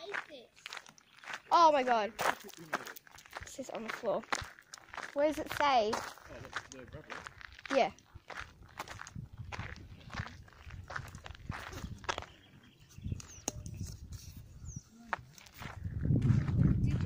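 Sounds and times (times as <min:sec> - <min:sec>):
footsteps crunching on gravel: 0:00.0 - 0:13.4, 0:14.8 - 0:17.0.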